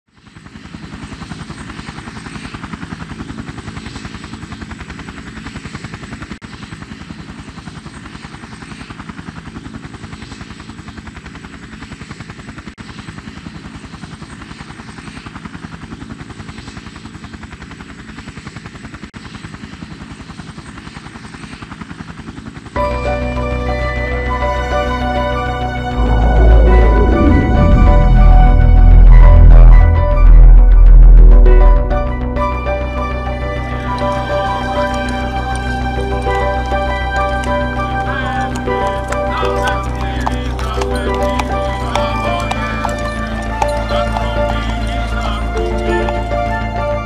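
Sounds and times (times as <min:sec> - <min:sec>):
helicopter engine noise: 0:00.1 - 0:47.0
helicopter rotor beating: 0:00.1 - 0:47.0
thin high whine: 0:25.4 - 0:38.6.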